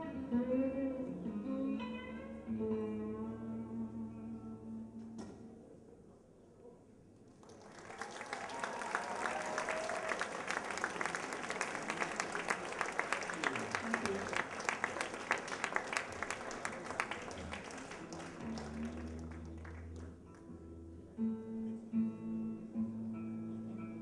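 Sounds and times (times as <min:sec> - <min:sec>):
guitar sustained notes: 0:00.0 - 0:05.2, 0:17.9 - 0:24.0
audience applauding: 0:07.3 - 0:20.4.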